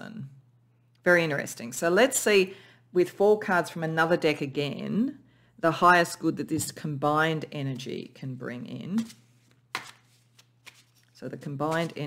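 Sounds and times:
cards knocked together: 9.7s - 10.0s
cards tapping: 9.7s - 11.1s.

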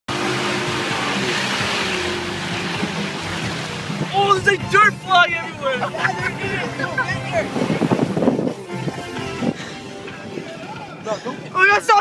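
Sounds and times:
engine running under load: 0.1s - 4.2s
background music: 0.1s - 12.0s.

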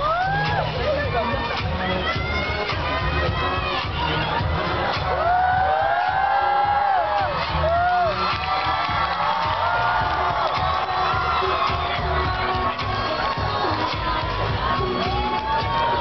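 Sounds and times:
dance music over loudspeakers: 0.0s - 16.0s
audience cheering: 3.7s - 16.0s.

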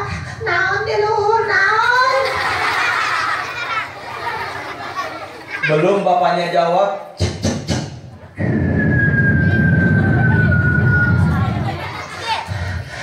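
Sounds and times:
vocal rumbling with falling whistle: 8.4s - 11.8s.

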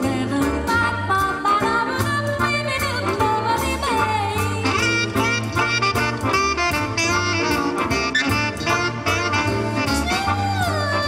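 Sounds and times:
big band playing swing jazz: 0.0s - 11.0s.

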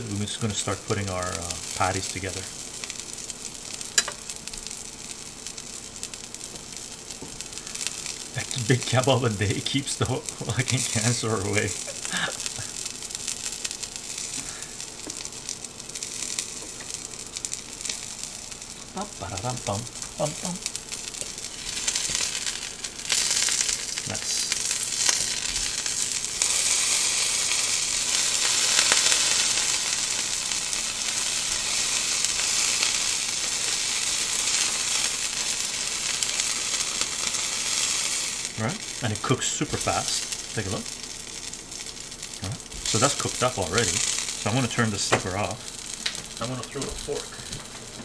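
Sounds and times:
burger patty sizzling in skillet: 0.0s - 48.0s.

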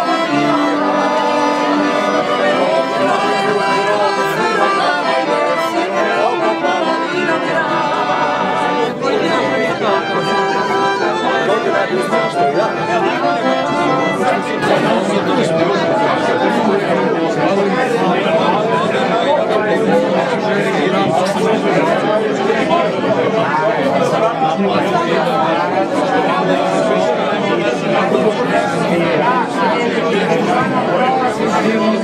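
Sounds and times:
accordion playing a tune: 0.0s - 32.0s
crowd chatter: 0.0s - 32.0s.

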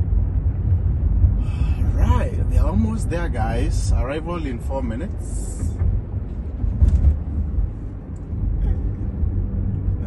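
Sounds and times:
road and tyre rumble: 0.0s - 10.0s.

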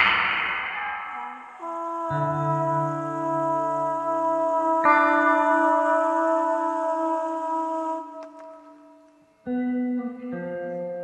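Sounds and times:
guitar chord ringing: 9.4s - 11.0s.

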